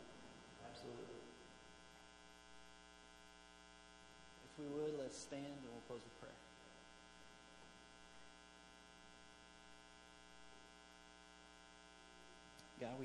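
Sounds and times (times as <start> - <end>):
electrical mains hum: 0.0 - 13.0
man speaking: 0.6 - 1.4, 4.4 - 6.5, 12.7 - 13.0.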